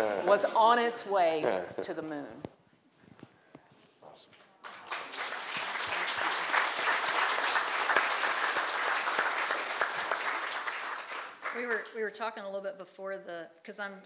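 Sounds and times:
audience applause: 4.6 - 11.8.

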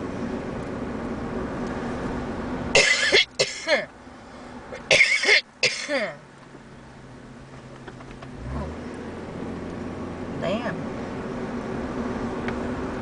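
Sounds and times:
car cabin road noise: 0.0 - 13.0
person coughing: 2.8 - 3.9, 4.9 - 6.2.

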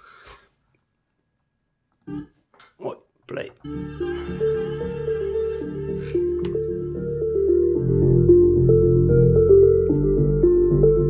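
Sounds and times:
deep bass: 3.7 - 11.0.

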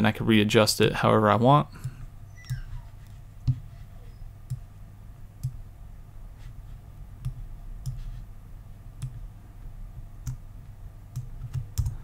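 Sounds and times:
low steady hum: 0.0 - 12.0
computer mouse clicks: 11.1 - 12.0.

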